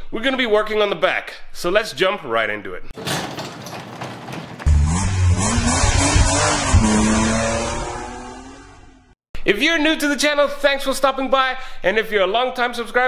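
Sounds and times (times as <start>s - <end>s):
car engine starting and revving: 4.6s - 9.2s.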